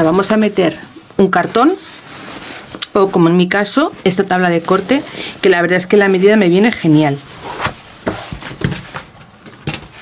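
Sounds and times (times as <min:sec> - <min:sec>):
canvas bag rustling: 0:00.0 - 0:09.2.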